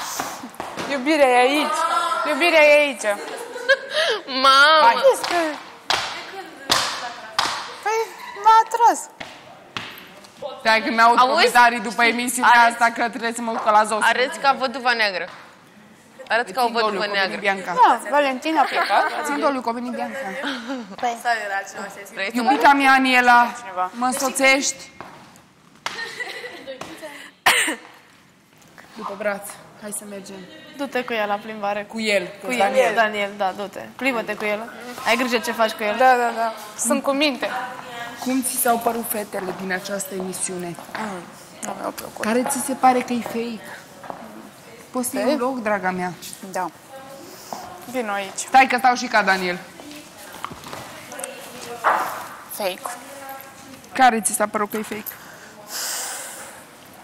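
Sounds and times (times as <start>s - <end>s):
person coughing: 27.4s - 27.9s
breathy exhale: 55.2s - 56.7s.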